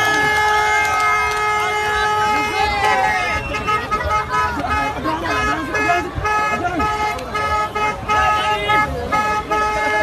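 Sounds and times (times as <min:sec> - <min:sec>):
crowd shouting: 0:00.0 - 0:10.0
horn steady tone: 0:00.0 - 0:10.0.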